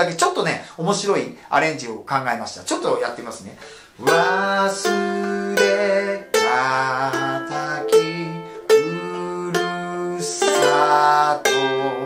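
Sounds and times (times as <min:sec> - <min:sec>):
man singing: 0:04.0 - 0:12.0
ukulele fingerpicked: 0:04.0 - 0:12.0.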